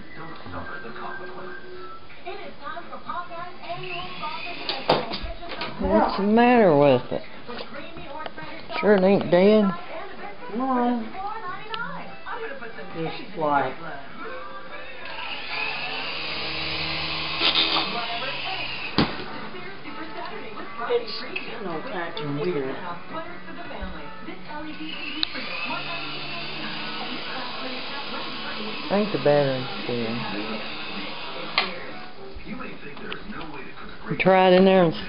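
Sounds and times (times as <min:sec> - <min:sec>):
soft background talking: 0:00.0 - 0:35.0
toy helicopter rotor motors whirring: 0:15.1 - 0:19.0, 0:24.8 - 0:31.6.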